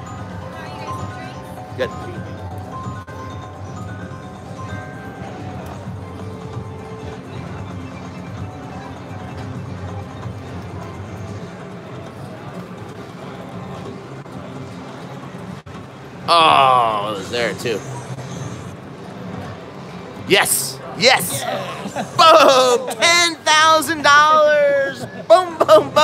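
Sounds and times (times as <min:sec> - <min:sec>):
slot machine bonus music: 0:00.0 - 0:05.8.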